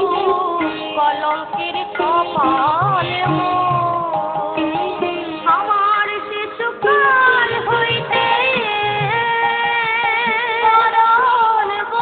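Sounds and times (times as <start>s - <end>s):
devotional singing with accompaniment: 0.0s - 12.0s.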